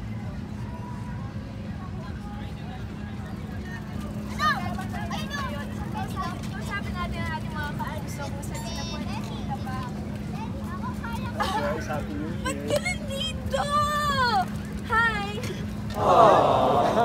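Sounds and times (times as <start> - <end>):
children shouting: 16.0 - 17.0.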